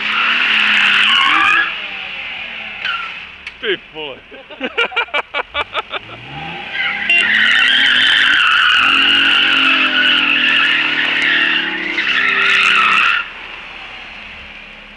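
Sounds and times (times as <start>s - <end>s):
tyres squealing: 0.0s - 2.0s, 6.2s - 13.4s
car engine revving: 0.0s - 4.0s, 5.3s - 14.9s.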